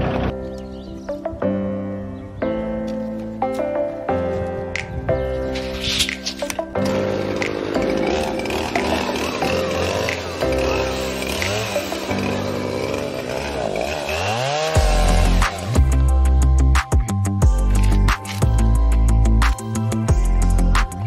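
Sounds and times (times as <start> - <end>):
background music: 0.0 - 21.0
chainsaw cutting log: 6.0 - 16.1.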